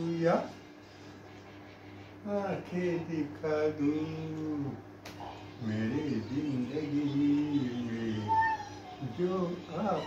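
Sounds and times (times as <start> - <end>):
old man singing a low note: 2.3 - 4.8.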